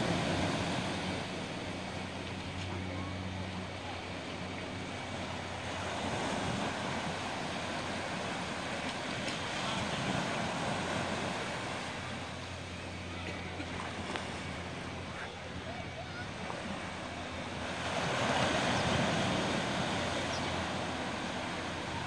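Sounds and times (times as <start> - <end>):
small waves washing onto sand: 0.0 - 22.0.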